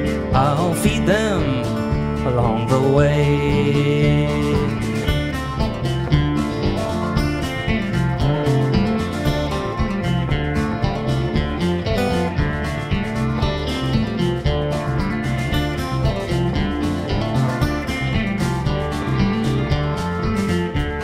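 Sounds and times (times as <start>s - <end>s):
acoustic guitars strumming: 0.0s - 21.0s
bass and drums beat: 0.0s - 21.0s.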